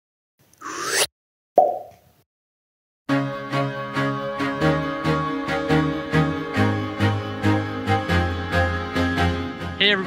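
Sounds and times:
short rising whoosh: 0.6 - 1.1.

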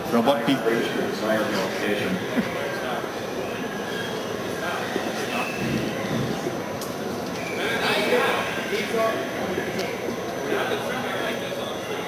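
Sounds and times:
indistinct speech and chatter: 0.0 - 12.0.

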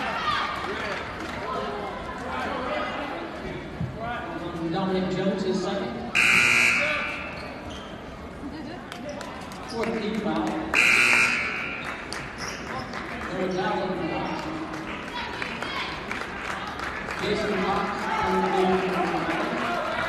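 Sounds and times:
crowd voices: 0.0 - 20.0
referee's whistle blasts: 6.2 - 7.6, 10.8 - 11.8.

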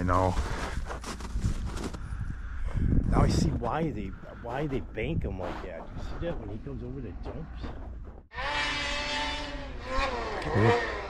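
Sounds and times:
snowmobile engine high revs: 8.3 - 11.0.

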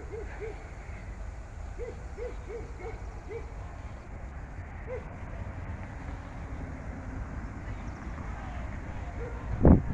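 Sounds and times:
bird hooting: 0.0 - 0.8, 1.8 - 3.5.

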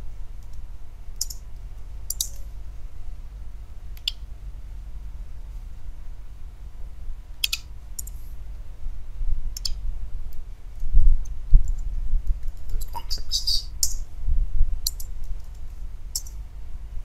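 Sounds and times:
low steady rumble: 0.0 - 17.0
mouse clicks: 2.1 - 2.4, 7.4 - 8.2, 9.6 - 9.8.

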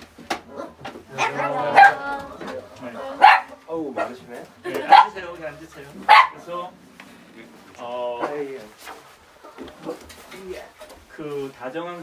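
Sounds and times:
dog barking: 0.6 - 2.0, 3.2 - 4.2, 4.8 - 5.2, 6.0 - 6.4
people's voices: 0.9 - 9.0.

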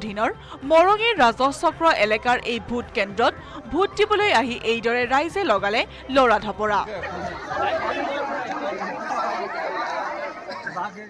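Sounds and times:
crowd chatter: 6.7 - 11.0.

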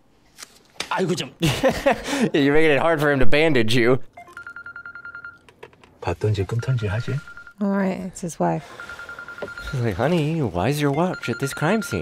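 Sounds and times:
mobile phone ringing: 4.1 - 5.5, 6.3 - 7.6, 8.6 - 12.0.

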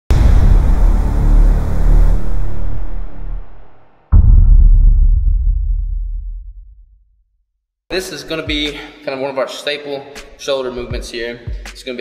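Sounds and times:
sustained deep rumble: 0.1 - 7.0
sudden loud hit: 0.1 - 7.2.

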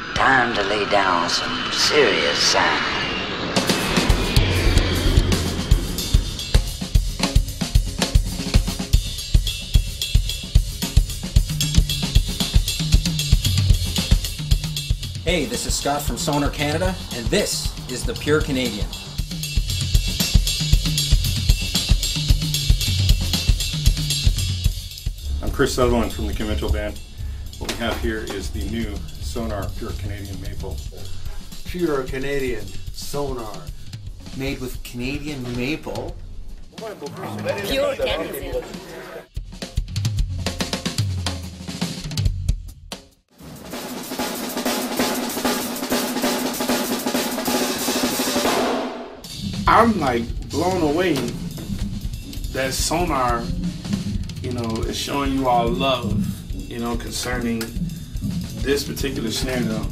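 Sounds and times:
bass line: 0.0 - 7.6, 15.2 - 20.0, 25.0 - 32.6
cymbal wash: 0.0 - 9.4, 11.6 - 22.7, 23.4 - 34.7
drum kit playing a steady beat: 5.3 - 59.9.

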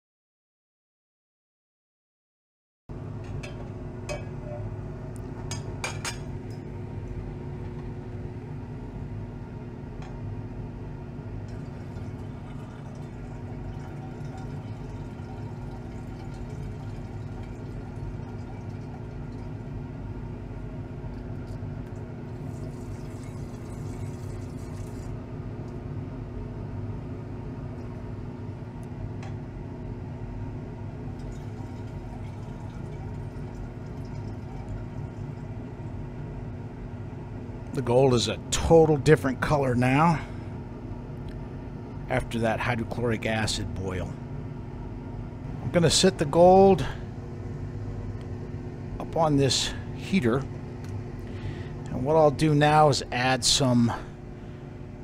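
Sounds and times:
steady low hum: 2.9 - 55.0
liquid pouring: 11.4 - 19.7, 22.2 - 25.2, 31.1 - 35.6.

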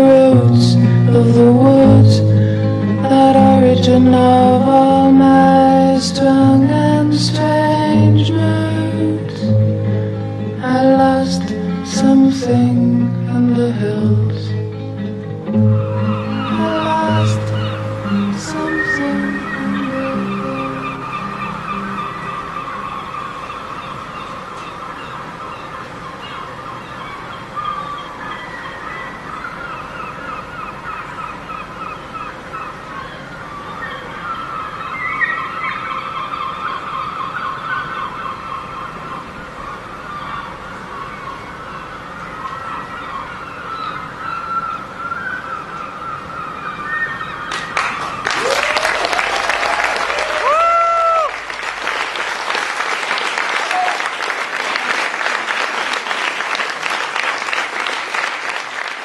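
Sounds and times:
high wavering call-like sounds: 15.6 - 48.4
audience applause: 47.5 - 59.0
cheers: 47.5 - 59.0.

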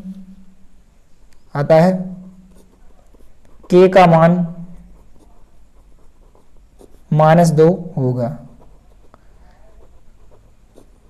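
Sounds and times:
pen scratching on paper: 2.5 - 11.0.

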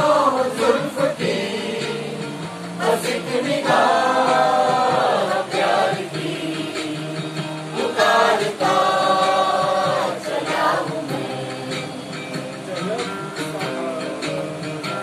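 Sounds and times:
mixed chorus singing: 0.0 - 12.7.

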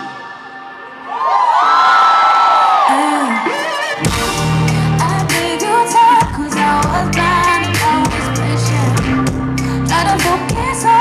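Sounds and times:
audience screaming and cheering: 0.0 - 6.6.

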